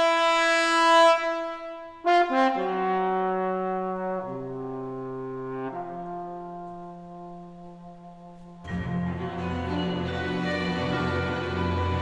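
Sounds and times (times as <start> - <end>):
solo trombone: 0.0 - 9.0.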